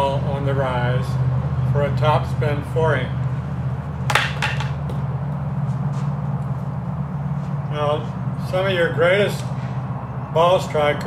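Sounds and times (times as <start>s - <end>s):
steady low hum: 0.0s - 11.0s
tennis racket clattering on floor: 4.1s - 4.9s.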